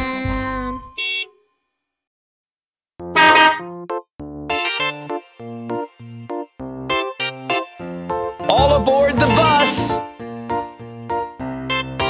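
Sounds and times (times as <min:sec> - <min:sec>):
children's song backing music: 0:00.0 - 0:00.9, 0:08.5 - 0:10.0
cartoon bus horn honk: 0:00.9 - 0:01.6, 0:03.1 - 0:03.8
brief high tone: 0:03.2 - 0:03.7.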